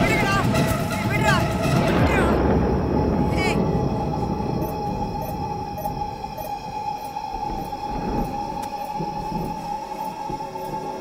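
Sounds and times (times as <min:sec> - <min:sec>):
eerie drone tone: 0:00.0 - 0:11.0
low rumble: 0:00.0 - 0:11.0.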